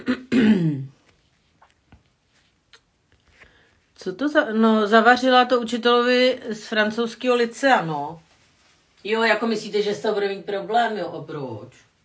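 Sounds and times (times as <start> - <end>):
woman clearing her throat: 0.0 - 1.0.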